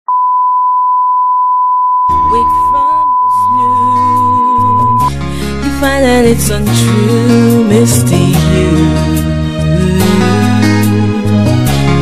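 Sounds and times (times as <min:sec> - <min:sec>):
high-pitched test tone beep: 0:00.1 - 0:05.1.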